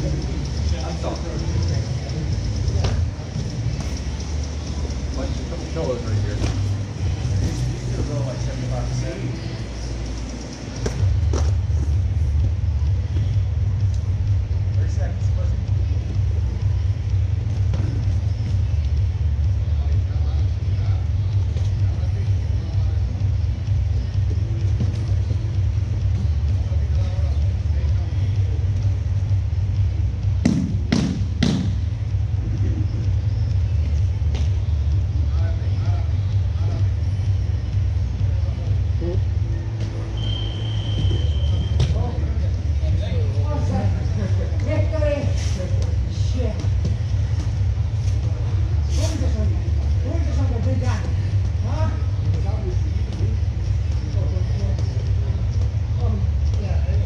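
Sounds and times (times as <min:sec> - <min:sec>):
low rumble of gym room noise: 0:00.0 - 0:57.0.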